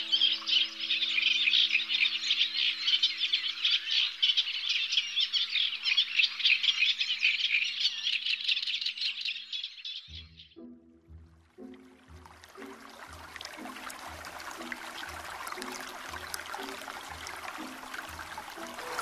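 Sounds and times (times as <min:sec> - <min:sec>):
birds chirping chorus: 0:00.0 - 0:10.6, 0:11.6 - 0:19.0
steady low tones: 0:10.1 - 0:19.0.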